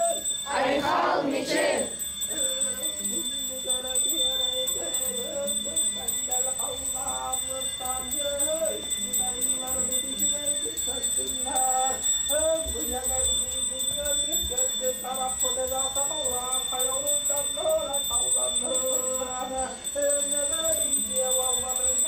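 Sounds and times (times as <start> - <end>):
slow chanted singing: 0.4 - 2.0.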